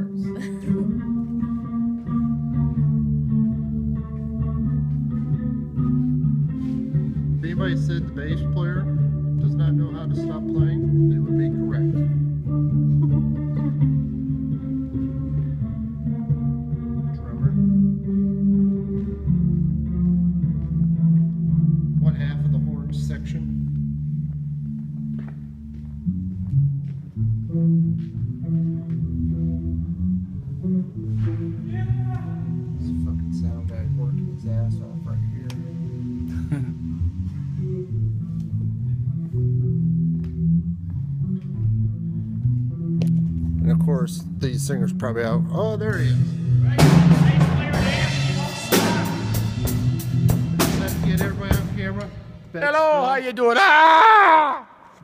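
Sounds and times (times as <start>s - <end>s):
electric bass low notes: 0.0s - 53.0s
band playing live: 45.6s - 53.5s
drum kit quick hits: 46.8s - 52.3s.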